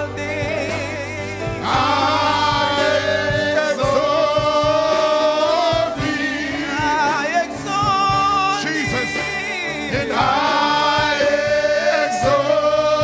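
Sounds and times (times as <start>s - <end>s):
choir and congregation singing gospel: 0.0s - 13.0s.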